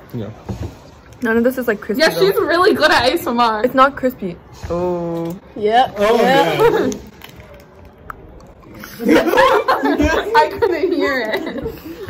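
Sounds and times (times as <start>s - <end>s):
chewing snack stick: 7.2s - 9.0s.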